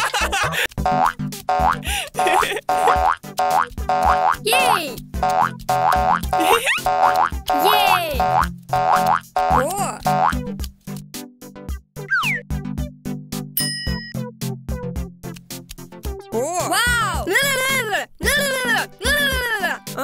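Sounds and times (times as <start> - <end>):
bouncy background music: 0.0 - 20.0
cartoon boing sound effects: 0.9 - 1.8, 2.7 - 10.4, 12.1 - 12.4.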